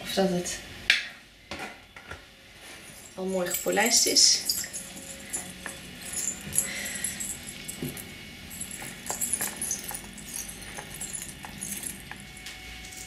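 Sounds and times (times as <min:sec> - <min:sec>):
metal rings clinking: 0:02.6 - 0:13.0.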